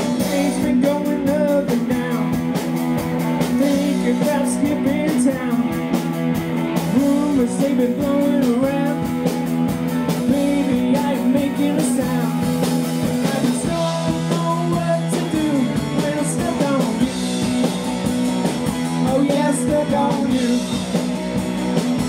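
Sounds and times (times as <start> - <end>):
drum kit: 0.0 - 22.0
electric guitar: 0.0 - 22.0.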